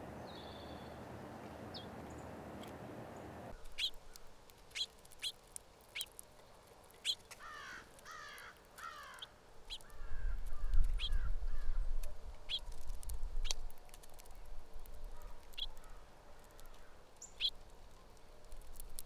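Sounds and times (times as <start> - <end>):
birds chirping: 0.0 - 6.2, 6.9 - 11.8, 15.0 - 18.6.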